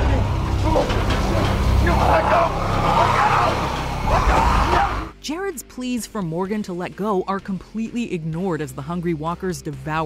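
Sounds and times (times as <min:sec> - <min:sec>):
low rumble: 0:00.0 - 0:05.1
zombies growling: 0:00.0 - 0:05.1.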